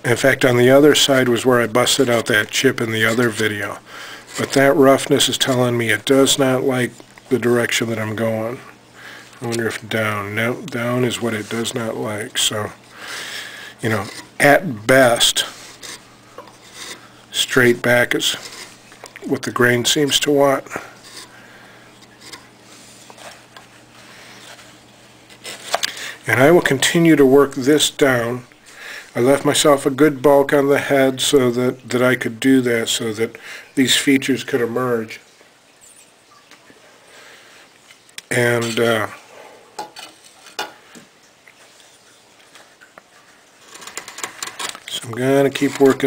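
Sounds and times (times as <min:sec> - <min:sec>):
low steady hum: 0:00.0 - 0:46.0
chisel scraping wood: 0:13.9 - 0:14.4, 0:15.5 - 0:17.1, 0:18.3 - 0:18.8, 0:21.0 - 0:21.3.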